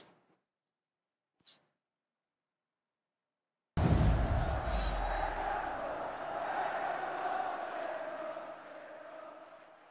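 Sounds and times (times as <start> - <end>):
deep boom: 3.8 - 6.0
crowd-like roar: 3.8 - 9.9.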